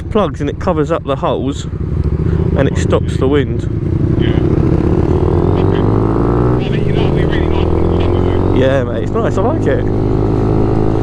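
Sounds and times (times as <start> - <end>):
motorcycle engine accelerating: 0.0 - 11.0.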